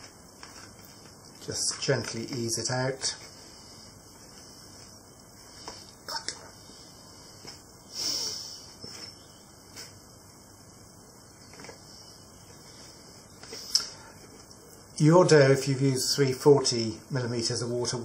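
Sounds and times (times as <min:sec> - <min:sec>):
plastic bowl rustle: 0:00.0 - 0:03.4.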